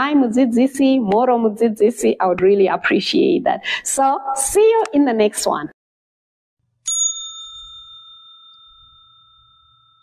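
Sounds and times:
bell-like chime ringing: 6.8 - 10.0.

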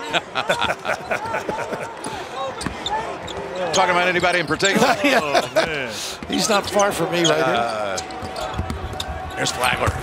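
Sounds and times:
commentators talking and chuckling: 0.0 - 2.5, 4.3 - 7.8.

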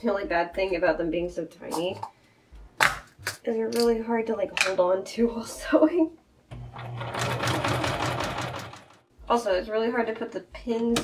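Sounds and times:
electric sewing machine running: 6.5 - 9.0.

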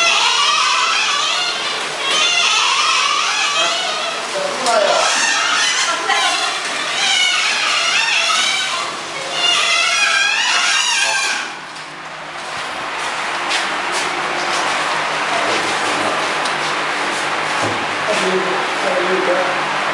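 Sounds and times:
people talking: 3.6 - 6.7, 18.1 - 19.6.

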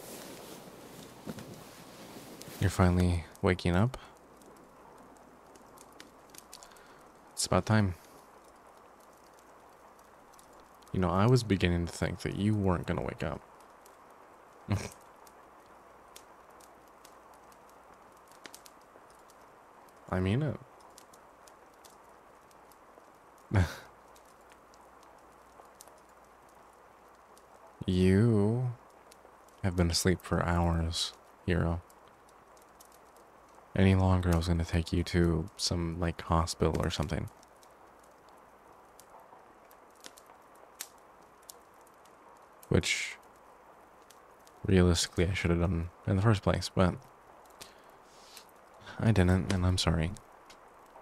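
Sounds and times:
faint steady hiss: 0.0 - 51.0.

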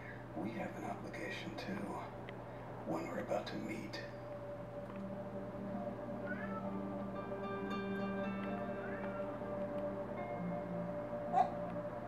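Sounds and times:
sustained layered music: 4.2 - 12.0.

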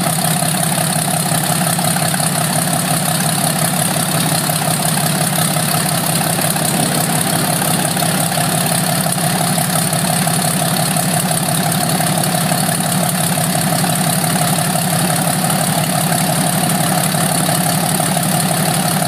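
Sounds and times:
propeller plane engine idling: 0.0 - 19.0.

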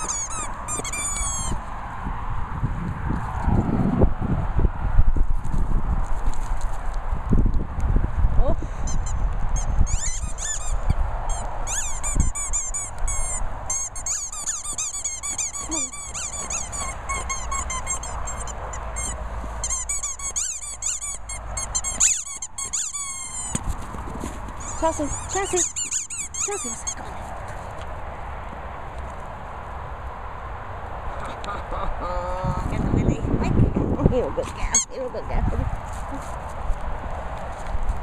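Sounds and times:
squeaky rubber dog toy: 0.0 - 1.6, 8.8 - 23.7, 24.6 - 27.3.

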